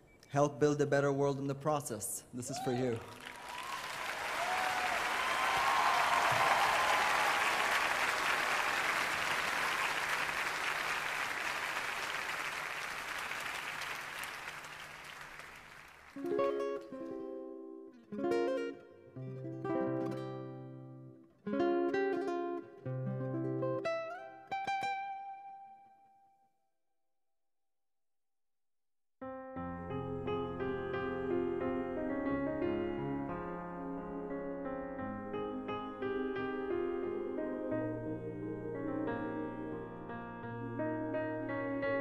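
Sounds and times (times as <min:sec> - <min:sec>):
audience applauding: 0:02.5 - 0:16.4.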